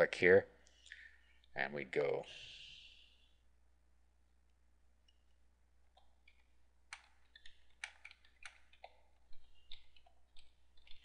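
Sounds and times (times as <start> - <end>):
computer keyboard key clicks: 6.3 - 9.0.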